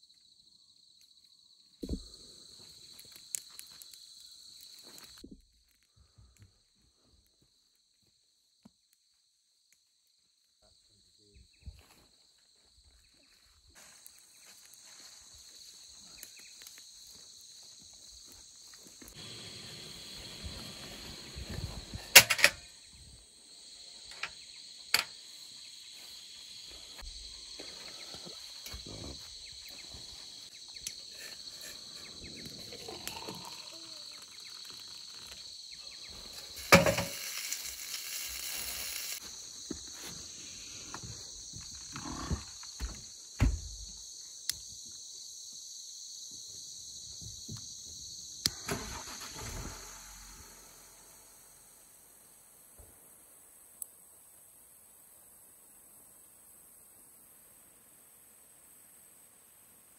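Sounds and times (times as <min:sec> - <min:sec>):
gas stove hiss: 0:19.1 - 0:22.6, 0:36.1 - 0:39.3
hot water pouring into mug: 0:32.7 - 0:33.8, 0:36.6 - 0:39.2.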